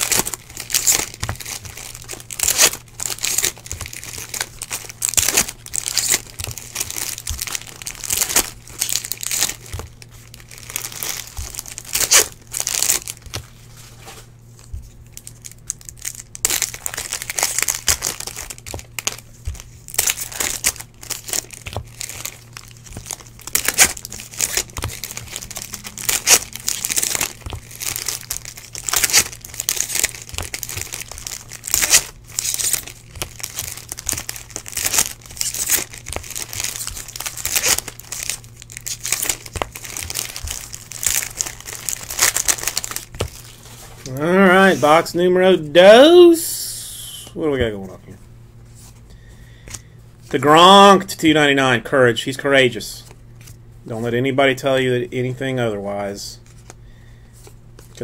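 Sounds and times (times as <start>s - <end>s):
foil wrappers crinkling and tearing: 0.0s - 45.1s, 56.0s - 58.0s
cards being shuffled: 16.5s - 44.8s
man speaking: 44.1s - 48.2s, 50.3s - 53.0s.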